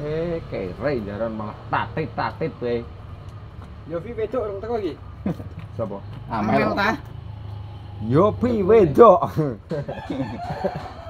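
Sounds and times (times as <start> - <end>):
men talking: 0.0 - 7.2, 8.0 - 11.0
rooster crowing: 9.8 - 11.0.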